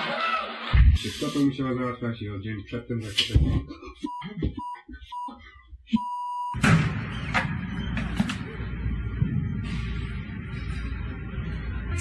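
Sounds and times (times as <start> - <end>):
man speaking: 0.9 - 3.8.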